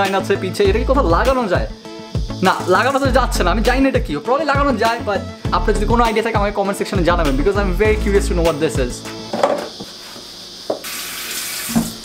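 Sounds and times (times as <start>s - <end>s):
tap turned on: 9.1s - 9.9s, 10.7s - 11.0s, 11.6s - 12.0s
water running into steel sink: 9.3s - 12.0s.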